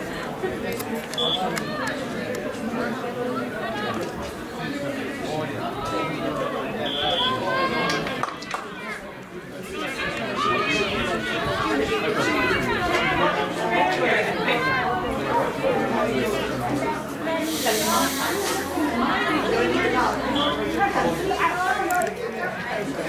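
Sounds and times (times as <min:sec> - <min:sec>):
many voices calling and chatting: 0:00.0 - 0:23.0
burst of hiss: 0:17.4 - 0:18.7.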